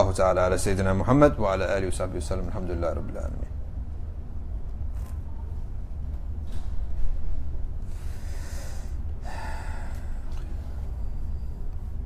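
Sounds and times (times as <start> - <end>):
steady low hum: 0.0 - 12.0
person breathing: 7.8 - 12.0.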